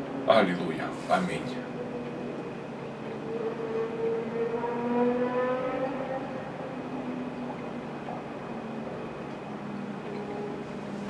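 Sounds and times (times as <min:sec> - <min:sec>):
engine running: 0:00.0 - 0:11.0.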